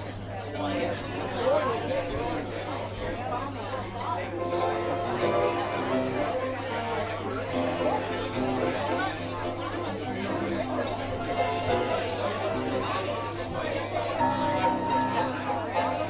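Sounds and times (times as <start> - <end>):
chatter of many people: 0.0 - 16.0
background music with held notes: 4.3 - 13.2, 13.8 - 16.0.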